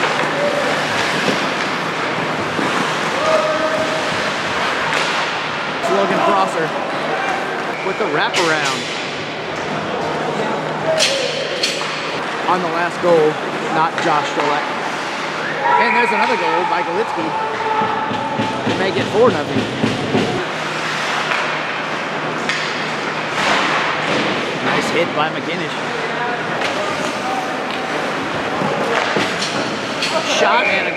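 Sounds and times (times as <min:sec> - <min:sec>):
skates scraping ice: 0:00.0 - 0:08.8.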